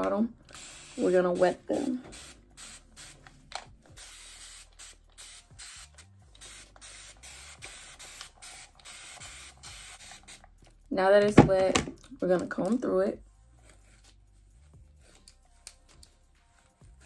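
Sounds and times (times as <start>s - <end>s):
spray bottle hissing sprays: 0.5s - 10.6s.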